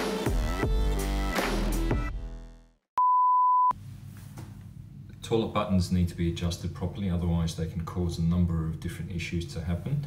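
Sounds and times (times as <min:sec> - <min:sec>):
high electronic beep: 0:03.0 - 0:03.7.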